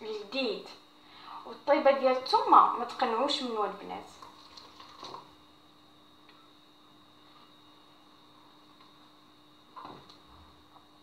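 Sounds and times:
faint steady hum: 0.0 - 11.0.

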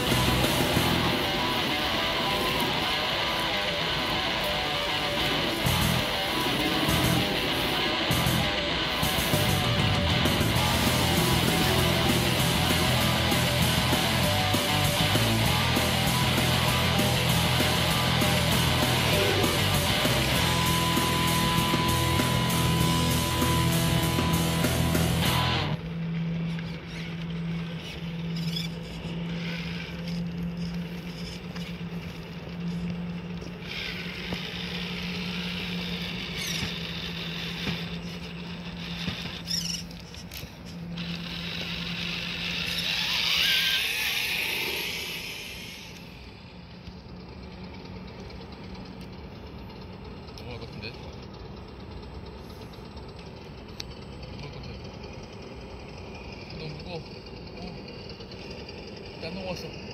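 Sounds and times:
rc car motors whining: 0.0 - 59.9.

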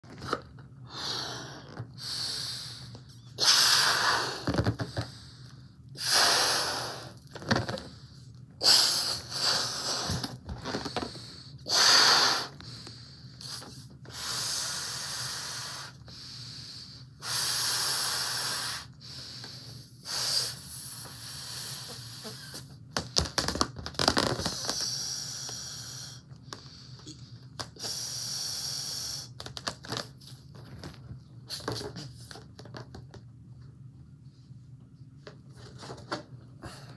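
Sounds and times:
breaths blowing up balloon: 0.8 - 30.0.

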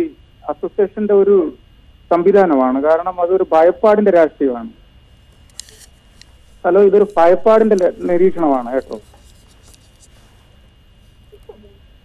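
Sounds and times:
telephone line hiss and hum: 0.0 - 12.0.

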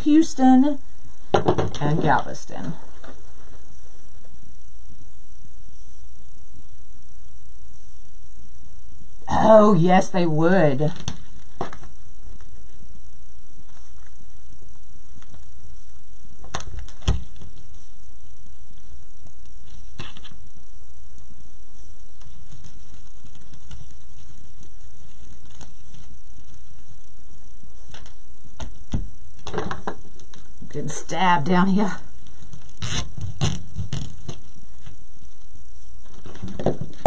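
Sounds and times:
background hum and hiss: 0.0 - 37.0.

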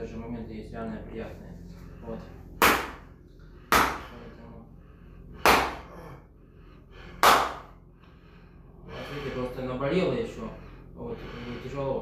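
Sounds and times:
hands slapping a bare back: 2.6 - 3.1, 3.7 - 4.2, 5.4 - 6.0, 7.1 - 7.8.

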